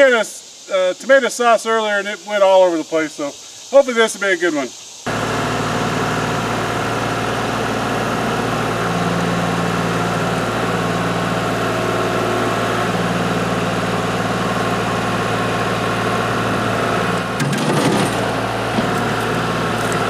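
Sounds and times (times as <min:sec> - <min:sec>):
diesel tractor engine running: 0:05.1 - 0:20.0
low hydraulic hum: 0:05.1 - 0:20.0.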